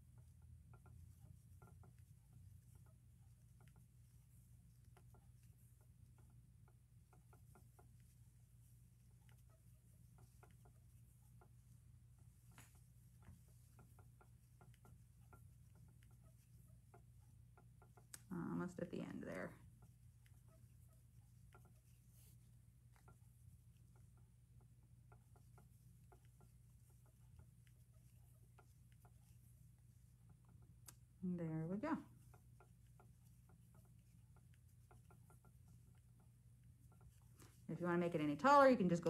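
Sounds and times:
crochet hook ticking on yarn: 0:00.0 - 0:39.0
low steady hum: 0:00.0 - 0:39.0.

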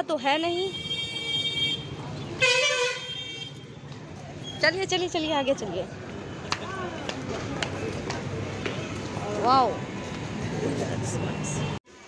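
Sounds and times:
low traffic rumble: 0:00.0 - 0:11.8
vehicle horns honking: 0:00.3 - 0:03.8.

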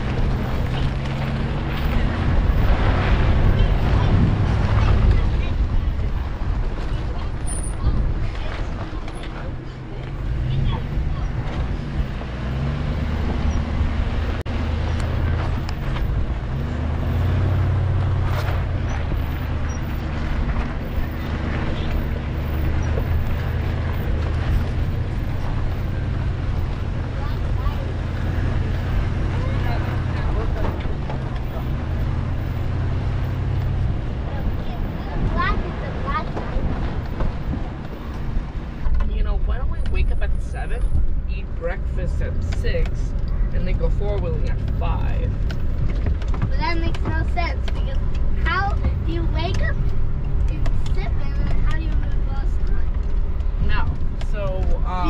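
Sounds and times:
engine running at low speed: 0:00.0 - 0:55.0
tyres on rough ground: 0:00.0 - 0:55.0.

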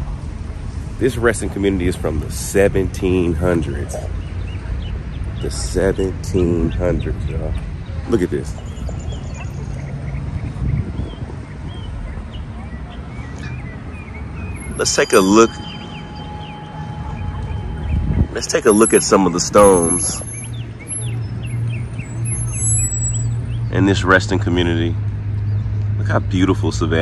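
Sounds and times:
wind rumble on microphone: 0:06.2 - 0:18.9
high bird chirps: 0:08.5 - 0:23.7.

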